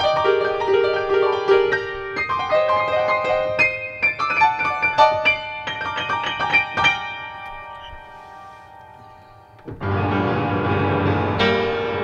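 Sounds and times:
piano chord ringing: 0.0s - 12.0s.

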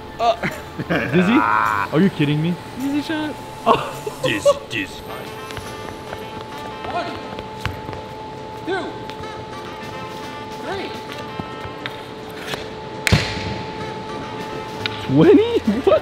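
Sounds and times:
voices: 0.0s - 7.6s
background music: 0.0s - 16.0s
hockey stick striking ball: 11.8s - 13.6s.

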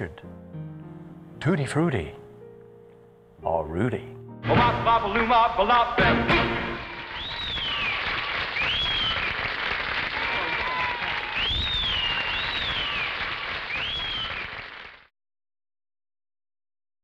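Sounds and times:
audience applauding and cheering: 6.2s - 15.1s
high whistles: 7.0s - 9.6s, 10.3s - 14.6s.

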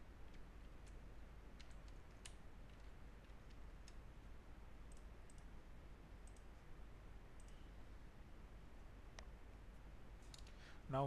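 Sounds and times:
low steady hum: 0.0s - 11.0s
computer mouse clicks: 0.2s - 4.0s, 4.8s - 5.5s, 6.2s - 6.6s, 7.3s - 7.6s, 10.2s - 10.6s.

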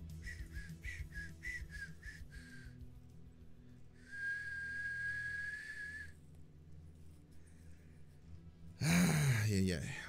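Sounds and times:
long whistled note: 4.0s - 6.2s.

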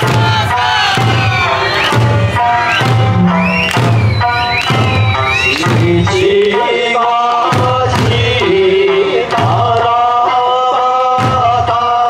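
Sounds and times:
deep drum beats: 0.0s - 12.0s
folk music: 0.0s - 12.0s.

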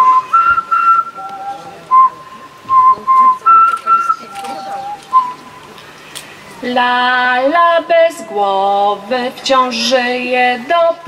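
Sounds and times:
woman whistling a tune: 0.0s - 1.2s, 1.9s - 5.5s.

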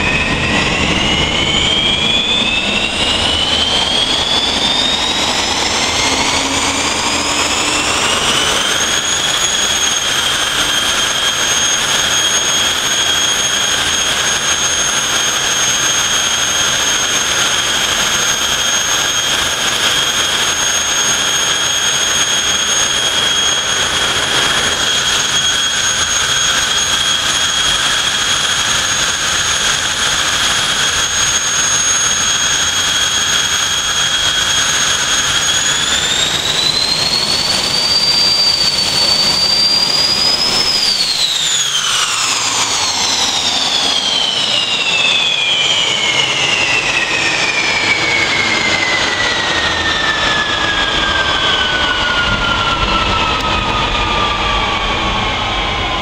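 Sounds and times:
jet turbine engine whine: 0.0s - 56.0s.

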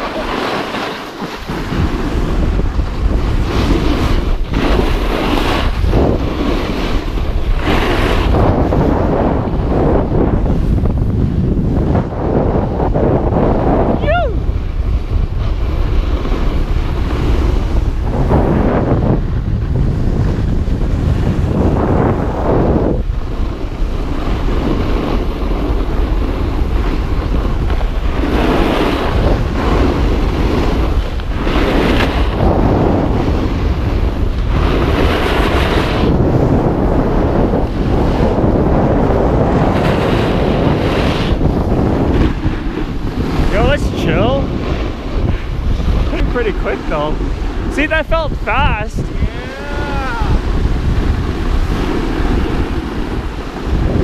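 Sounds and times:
snowboard scraping over snow: 0.0s - 54.0s
wind buffeting microphone: 0.0s - 54.0s.

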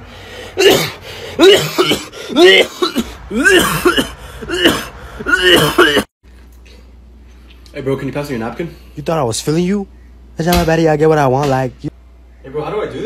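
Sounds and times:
man coughing: 0.6s - 6.1s.

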